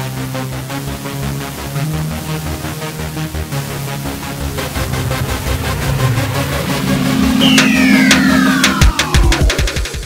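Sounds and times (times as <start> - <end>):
low drone: 2.1 - 9.8
electronic intro music: 2.6 - 10.0
falling sweep: 4.0 - 9.8
sharp hits: 4.5 - 10.0.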